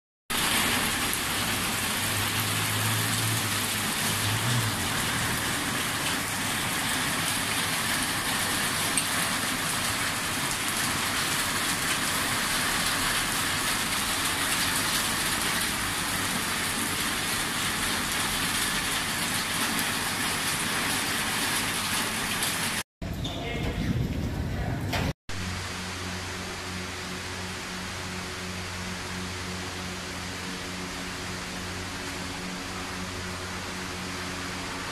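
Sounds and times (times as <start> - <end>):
heavy rain on pavement: 0.3 - 22.8, 23.6 - 34.9.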